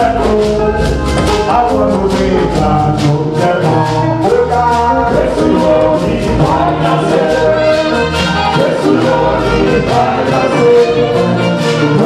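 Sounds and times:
choir singing gospel music: 0.0 - 12.0
quick percussion beat: 0.0 - 12.0.

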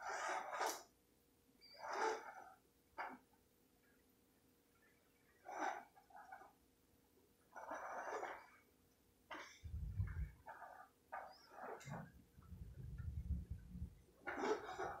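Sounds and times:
low rumbling noise: 9.6 - 10.4, 11.8 - 14.1.

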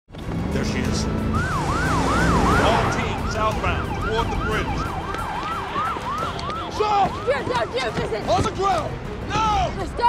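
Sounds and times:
car engines rumbling: 0.1 - 10.0
emergency vehicle sirens: 0.5 - 9.6.

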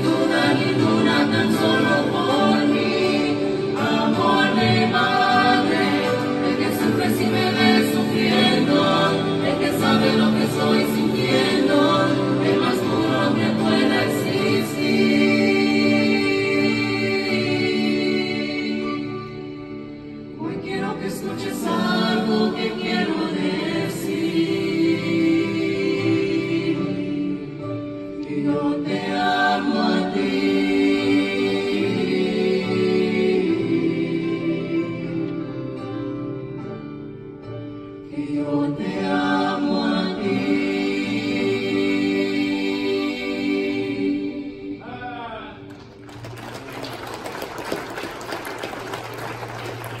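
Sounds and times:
vocal group singing in harmony: 0.0 - 36.9, 37.8 - 50.0
crowd clapping: 45.7 - 50.0.

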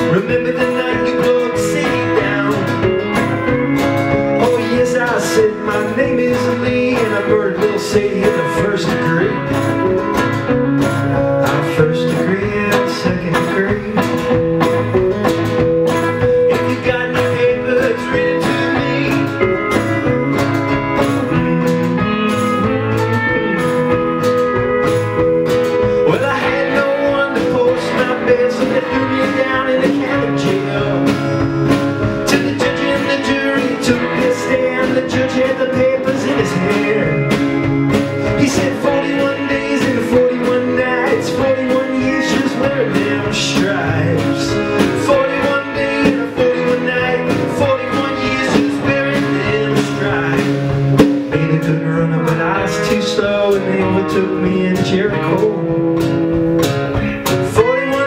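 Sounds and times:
drums: 0.0 - 58.0
electric and acoustic guitars: 0.0 - 58.0
pedal steel guitar: 0.0 - 58.0.

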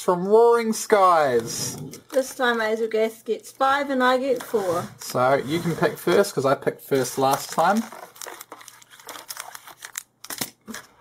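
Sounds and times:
foil wrappers crinkling: 7.0 - 11.0.

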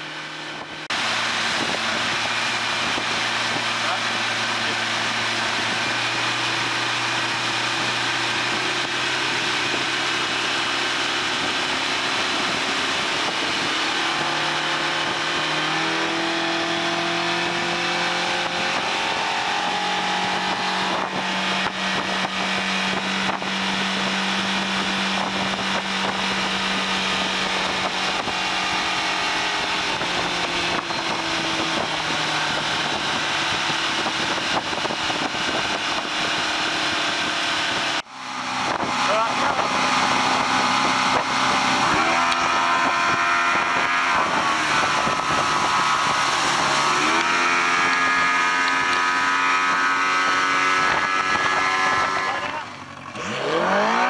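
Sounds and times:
outboard motor revving: 0.0 - 54.0
wind and water rushing: 0.0 - 54.0.

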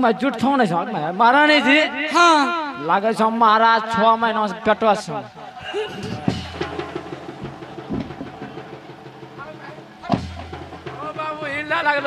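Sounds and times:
soft low thumps: 6.0 - 8.7.

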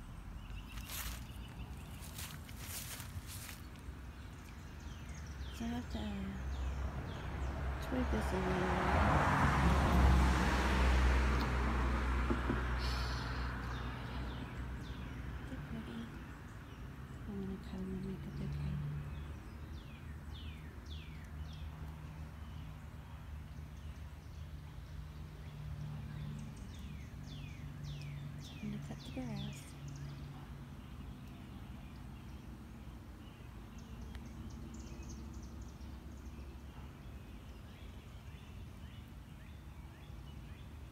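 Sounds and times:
wild birds chirping: 0.0 - 9.8, 11.5 - 40.9
vehicle engine rumble: 0.0 - 40.9.

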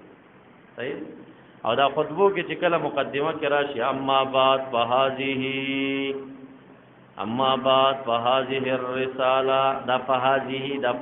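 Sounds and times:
man chanting melodically: 0.8 - 6.4, 7.2 - 11.0.

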